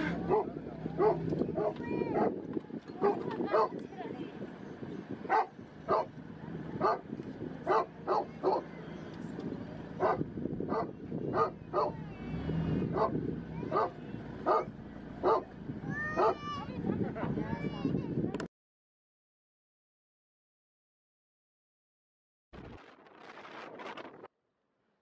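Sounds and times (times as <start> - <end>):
dog barking: 0.2 - 2.4, 3.0 - 3.8, 5.3 - 6.1, 6.8 - 7.0, 7.7 - 8.7, 10.0 - 12.0, 12.9 - 15.5, 16.2 - 16.4.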